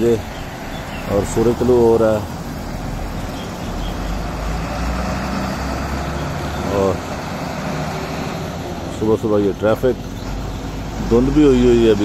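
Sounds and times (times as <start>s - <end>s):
motorcycles passing: 0.0s - 12.0s
road traffic rumble: 0.0s - 12.0s
person's voice: 1.0s - 2.3s, 11.0s - 12.0s.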